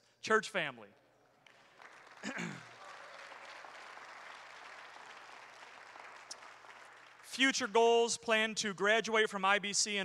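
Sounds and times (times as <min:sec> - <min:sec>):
congregation applauding: 0:01.3 - 0:08.5.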